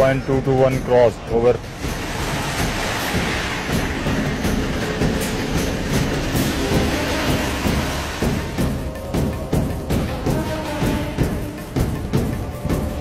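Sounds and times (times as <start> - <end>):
rhythmic ticking clatter: 0.0 - 13.0.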